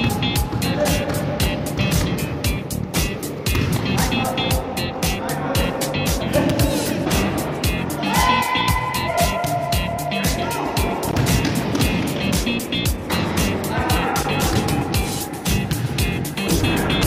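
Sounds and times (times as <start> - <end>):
fast beat music with synth notes: 0.0 - 17.0.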